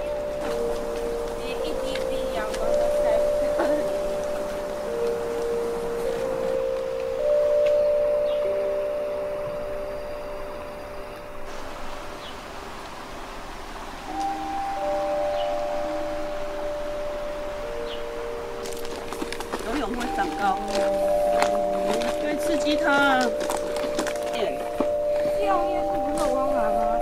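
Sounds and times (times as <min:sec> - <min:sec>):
slow music of held notes: 0:00.0 - 0:12.9, 0:13.7 - 0:27.0.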